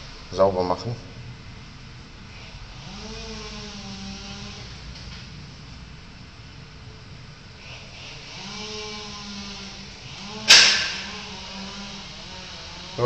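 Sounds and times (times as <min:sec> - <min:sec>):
low steady hum: 0:00.0 - 0:13.0
sharp knock: 0:10.5 - 0:11.2.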